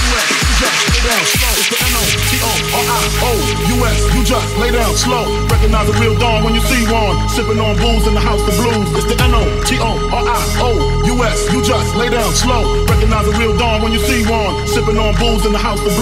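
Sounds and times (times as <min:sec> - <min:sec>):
rising noise sweep: 0:00.0 - 0:07.2
rap vocals: 0:00.0 - 0:16.0
heavy sustained bass: 0:01.8 - 0:16.0
kick drum: 0:05.5 - 0:05.9, 0:12.9 - 0:13.2.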